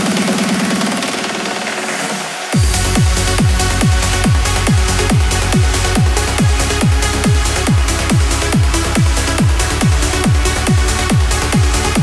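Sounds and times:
fast repeating synth pulse: 0.0s - 12.0s
sustained synth pads: 0.0s - 12.0s.

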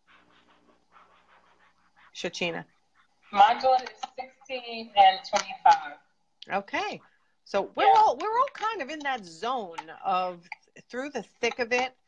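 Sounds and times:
rhythmic soft puffs: 0.0s - 12.0s.

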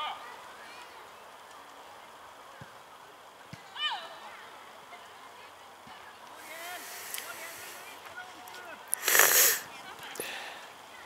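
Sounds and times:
faint high hiss: 0.4s - 11.0s.

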